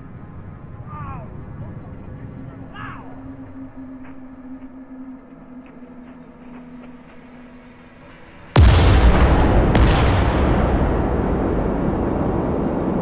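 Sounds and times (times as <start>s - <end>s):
steady hum: 0.0s - 13.0s
distant explosion rumble: 8.6s - 13.0s.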